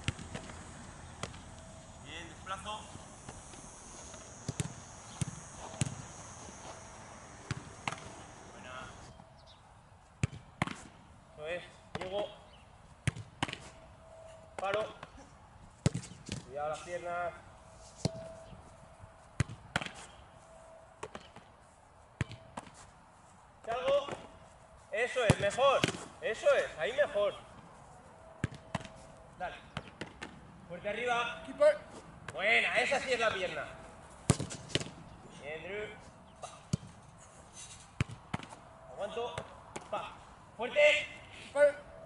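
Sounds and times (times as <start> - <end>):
soccer balls thudding: 0.0 - 1.8, 2.9 - 9.0, 10.2 - 10.9, 28.4 - 28.9, 34.2 - 35.0, 36.7 - 37.0, 38.0 - 38.6
football struck hard thud: 4.4 - 6.0, 7.5 - 8.1, 34.3 - 34.9.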